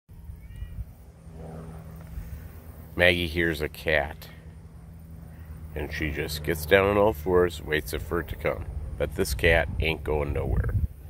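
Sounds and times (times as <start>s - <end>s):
steady low rumble: 0.1s - 11.0s.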